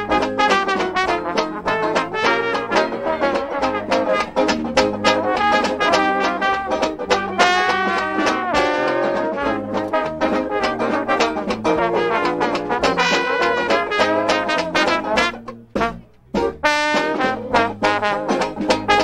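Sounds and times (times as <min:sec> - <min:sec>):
brass band playing upbeat tune: 0:00.0 - 0:19.0.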